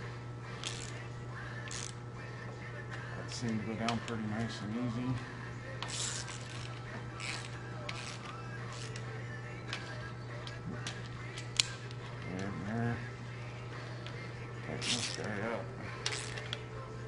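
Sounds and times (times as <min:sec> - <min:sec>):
hand ratchet clicking: 0:00.6 - 0:01.0, 0:01.7 - 0:02.0, 0:05.8 - 0:09.1, 0:09.7 - 0:12.5, 0:14.8 - 0:15.4, 0:16.0 - 0:16.6.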